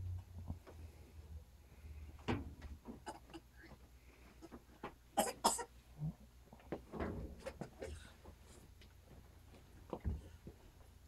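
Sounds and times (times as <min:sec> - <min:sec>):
person coughing: 0:05.2 - 0:05.7.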